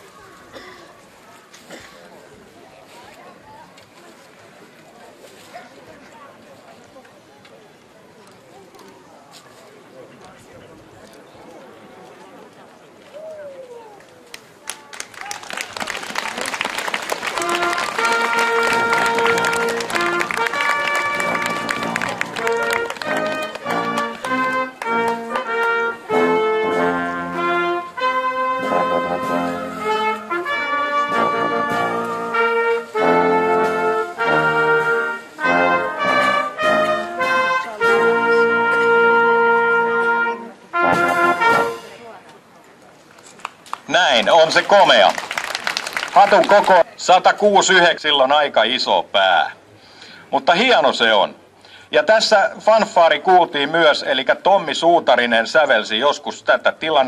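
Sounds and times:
crowd noise: 0.0s - 57.0s
brass ensemble playing fanfare: 16.0s - 42.0s.

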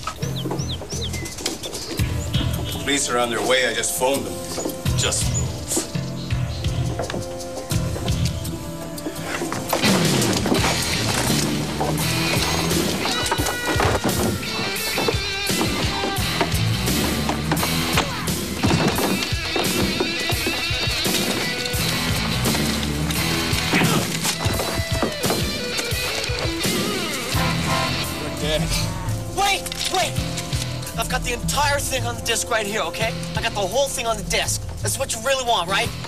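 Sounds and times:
dramatic action music: 0.1s - 36.0s.

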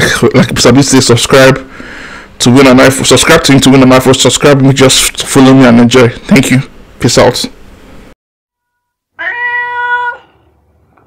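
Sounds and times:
cat meow: 9.2s - 10.6s.

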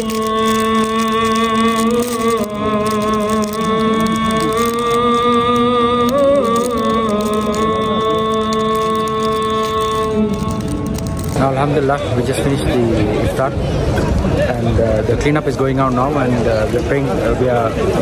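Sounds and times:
man chanting: 0.0s - 13.3s.

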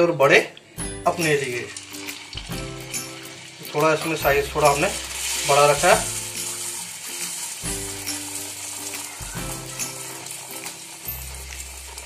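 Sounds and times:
background music with chords: 0.6s - 12.0s
dough frying in hot oil: 0.8s - 12.0s.

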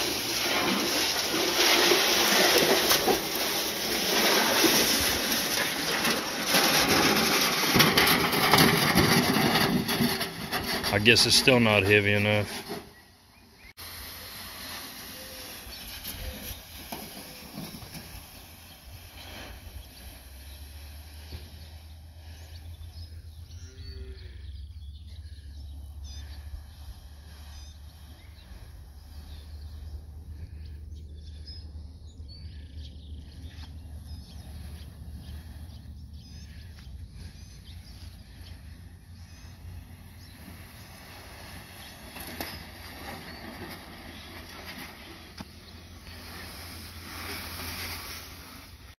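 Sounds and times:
faint bird chirps: 15.0s - 46.3s.

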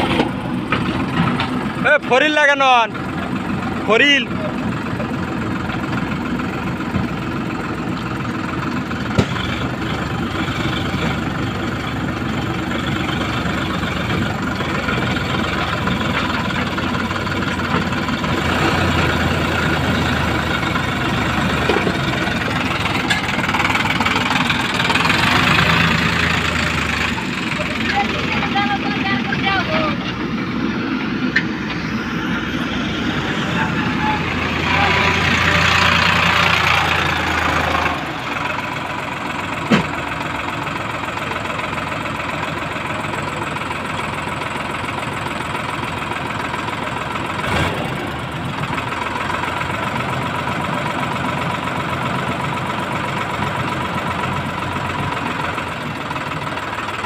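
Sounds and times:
tractor diesel engine under load: 0.0s - 57.0s.

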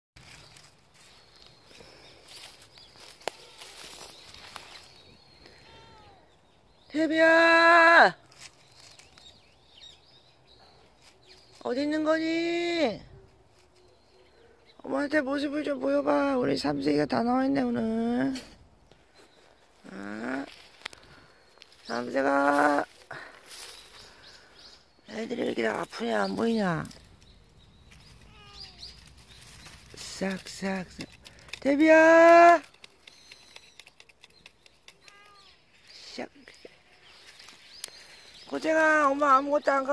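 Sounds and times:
cat meowing: 5.6s - 6.3s, 28.2s - 28.9s, 35.0s - 35.6s.

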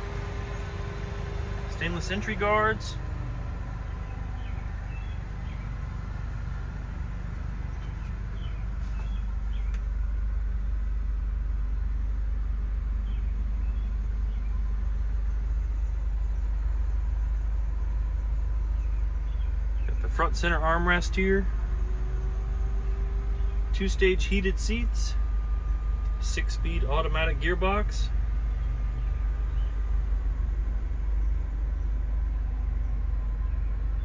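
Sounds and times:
car engine idling: 0.0s - 34.0s
bird chirps: 3.9s - 5.8s, 7.7s - 9.8s.

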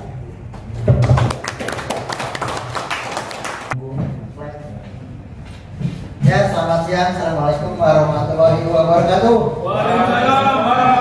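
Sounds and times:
audience applauding: 1.0s - 3.8s.

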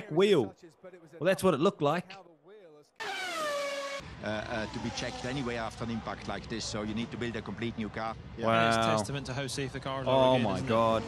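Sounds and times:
race car engine at high revs: 3.0s - 5.4s.

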